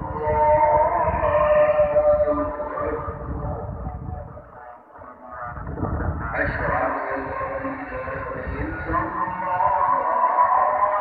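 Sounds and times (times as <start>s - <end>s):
man chanting call to prayer: 0.0s - 11.0s.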